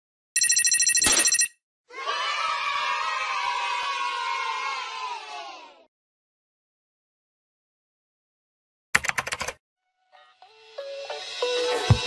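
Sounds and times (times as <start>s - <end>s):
crowd cheering: 1.9s - 5.9s.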